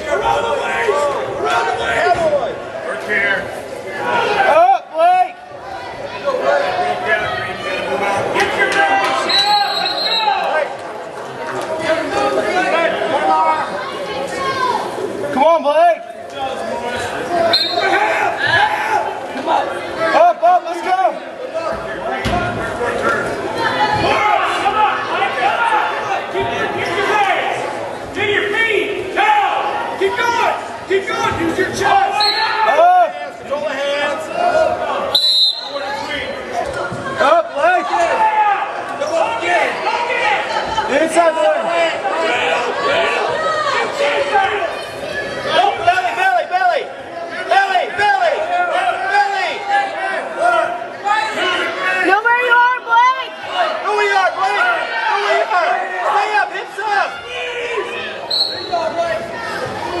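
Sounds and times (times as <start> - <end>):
spectators calling out: 3.9 - 16.0, 16.6 - 60.0
people shouting in gym: 16.8 - 60.0.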